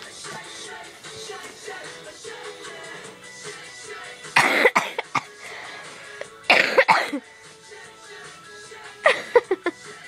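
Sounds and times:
faint pop music: 0:00.0 - 0:10.0
breathy vocal bursts: 0:05.0 - 0:07.3.

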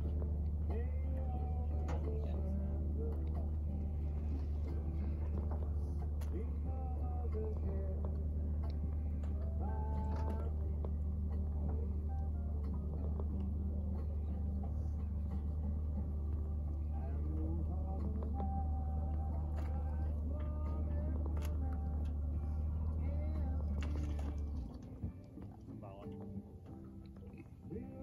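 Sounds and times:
boat engine idling: 0:00.0 - 0:28.0
distant people talking: 0:00.0 - 0:28.0.

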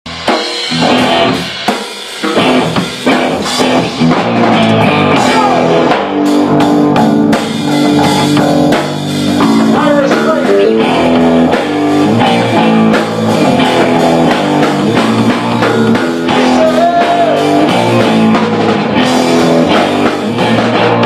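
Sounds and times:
drum hits: 0:00.1 - 0:21.0
electric guitar: 0:00.1 - 0:21.0.

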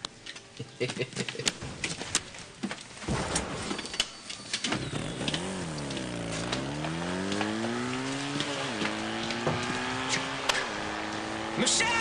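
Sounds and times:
vehicle engine revving: 0:04.8 - 0:12.0.

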